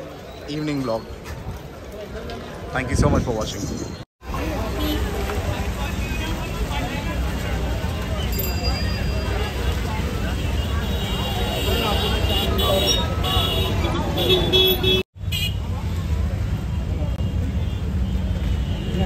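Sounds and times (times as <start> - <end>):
crowd chatter: 0.0 - 15.0
traffic engines rumbling: 0.0 - 19.0
vehicle horn toot: 10.6 - 15.6.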